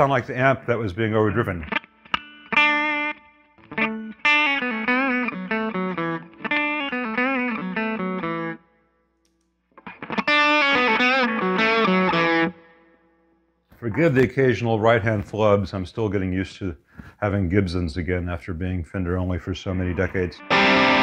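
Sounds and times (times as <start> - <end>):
electric guitar through amp: 1.6 - 8.6, 9.8 - 12.8, 19.8 - 21.0.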